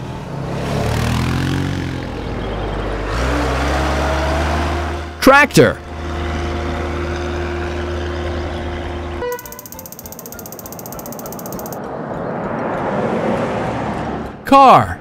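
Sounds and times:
rapid high ratcheting rattle: 9.4s - 11.8s.

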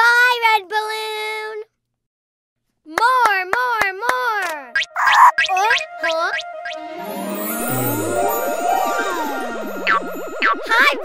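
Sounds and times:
hand claps: 3.0s - 4.6s
cartoon baby vocalizing: 7.6s - 9.6s.

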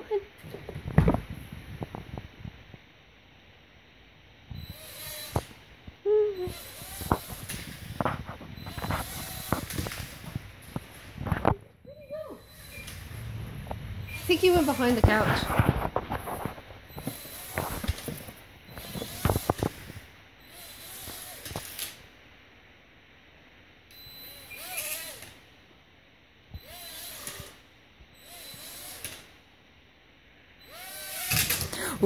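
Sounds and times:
toy quadcopter motors whirring: 4.6s - 5.6s, 6.4s - 10.4s, 12.2s - 13.2s, 14.0s - 15.2s, 17.0s - 22.0s, 24.3s - 25.4s, 26.6s - 27.6s, 28.2s - 29.3s, 30.6s - 32.0s.

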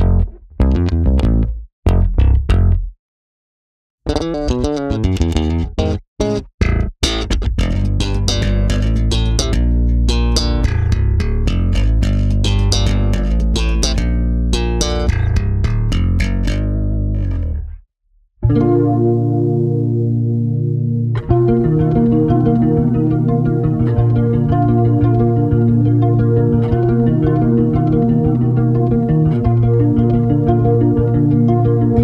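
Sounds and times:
electric bass playing: 0.0s - 2.9s, 4.1s - 17.8s, 18.4s - 32.0s.

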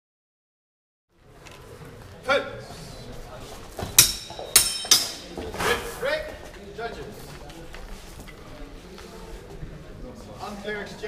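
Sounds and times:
steel swords clashing: 4.0s - 5.4s.

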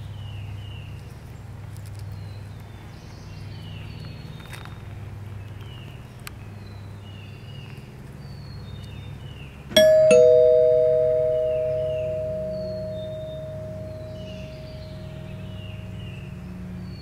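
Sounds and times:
two-tone doorbell chime: 9.8s - 16.0s.

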